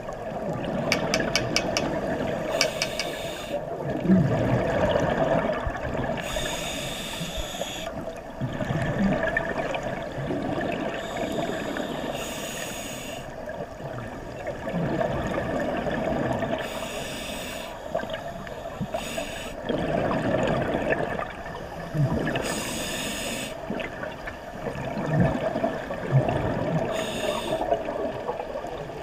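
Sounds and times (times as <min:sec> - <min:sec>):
regulator inhalation hiss: 0:02.5 - 0:03.6, 0:06.2 - 0:07.9, 0:11.0 - 0:13.3, 0:16.6 - 0:19.6, 0:22.4 - 0:23.6, 0:26.9 - 0:27.8
exhaled bubbles burbling: 0:03.7 - 0:06.3, 0:08.0 - 0:11.1, 0:13.5 - 0:16.6, 0:19.6 - 0:22.5, 0:23.6 - 0:27.0.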